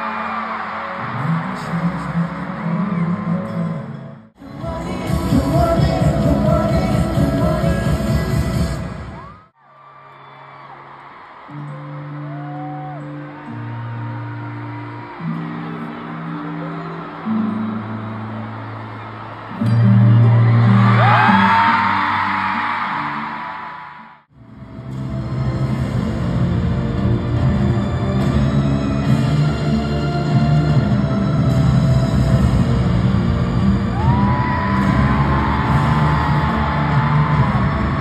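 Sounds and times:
crowd screaming and cheering: 0.0s - 4.0s, 8.8s - 24.3s, 26.2s - 38.0s
full band song: 4.4s - 9.1s.

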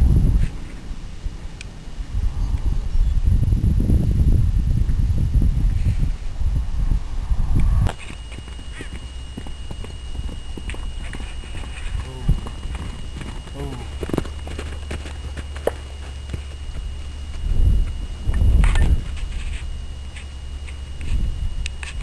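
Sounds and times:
wind on microphone: 0.0s - 22.0s
hoofbeats on sand: 8.4s - 18.0s.

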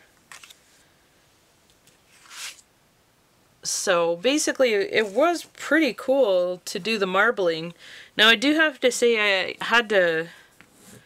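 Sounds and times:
paper cards rustling and clicking: 0.3s - 0.7s.

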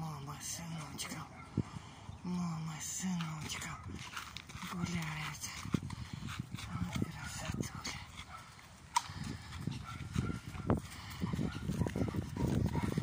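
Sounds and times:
dogs breathing: 0.4s - 2.2s, 3.1s - 13.0s
dog footfalls on dirt: 3.1s - 13.0s.

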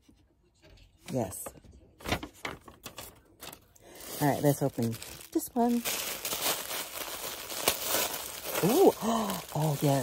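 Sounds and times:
package wrapping crinkling: 2.8s - 10.0s
sharp crackle of wrapping: 3.4s - 10.0s.

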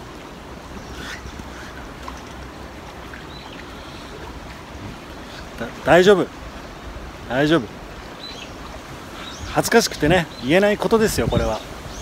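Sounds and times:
river water flowing: 0.0s - 12.0s
wind rumble on microphone: 8.6s - 12.0s.

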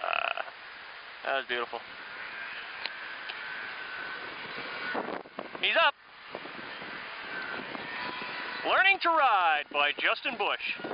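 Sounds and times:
distant snowmobile engine drone: 0.0s - 10.9s
wind buffeting microphone: 1.8s - 10.9s.

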